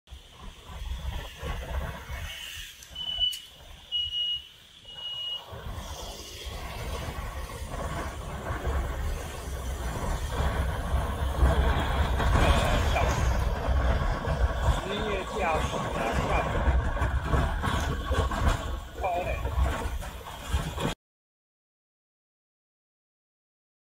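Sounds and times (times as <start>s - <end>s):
wind and road rumble: 0.1s - 21.0s
short high beeps: 3.0s - 5.5s.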